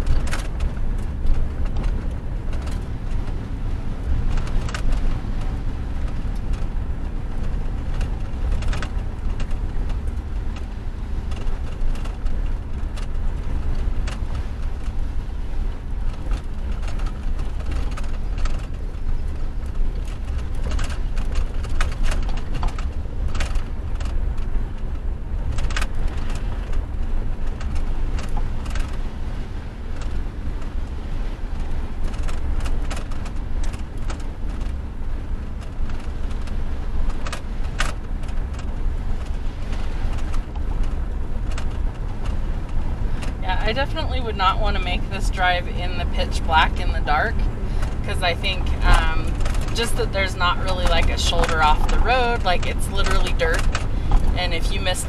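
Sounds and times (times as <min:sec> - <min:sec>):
cab knocks and rattles: 0:00.0 - 0:44.1
truck engine and tyres rumbling: 0:00.0 - 0:55.0.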